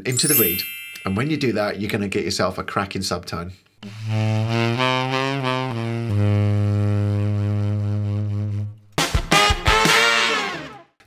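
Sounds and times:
tenor saxophone low notes: 0:03.8 - 0:10.8.

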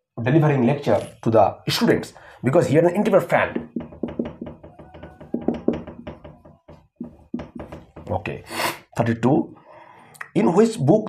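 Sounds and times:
marker writing on whiteboard: 0:03.0 - 0:08.3.

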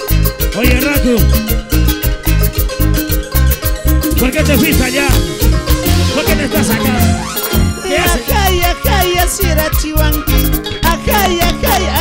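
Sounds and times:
live band with harp and keyboard: 0:00.0 - 0:12.0.

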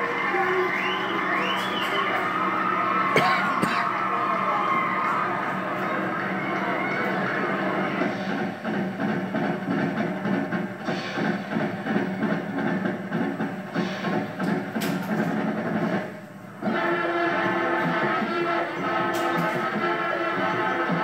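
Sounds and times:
marching band playing: 0:00.0 - 0:21.0.

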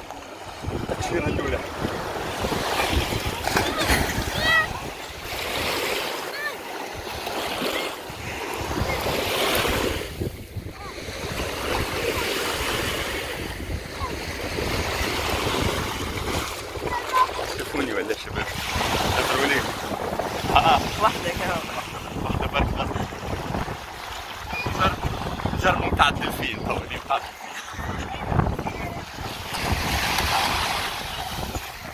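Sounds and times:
wind rumbling on microphone: 0:00.0 - 0:05.6, 0:08.0 - 0:31.9
small waves washing onto shore: 0:00.0 - 0:31.9.

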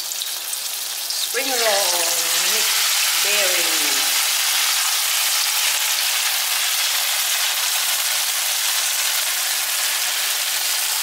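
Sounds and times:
oil sizzling while deep-frying: 0:00.0 - 0:11.0.

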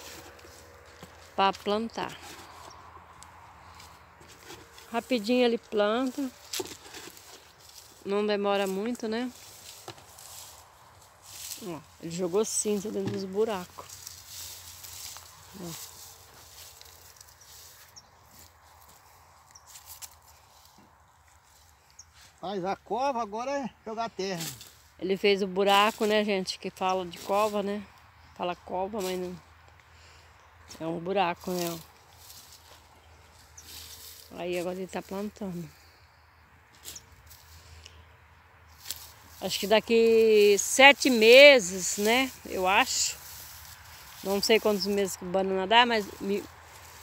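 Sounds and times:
rustling of plant being handled: 0:00.0 - 0:22.5, 0:24.2 - 0:35.9, 0:36.6 - 0:37.8, 0:38.7 - 0:47.0
scuffs in loose soil: 0:00.0 - 0:22.5, 0:30.0 - 0:35.9, 0:36.6 - 0:37.8, 0:38.7 - 0:47.0.

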